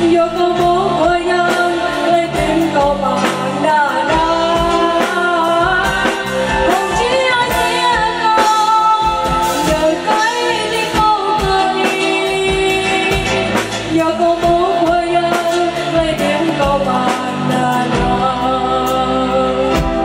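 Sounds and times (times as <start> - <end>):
drum kit beat: 0.0 - 20.0
electric keyboard: 0.0 - 20.0
woman singing into microphone: 0.0 - 20.0.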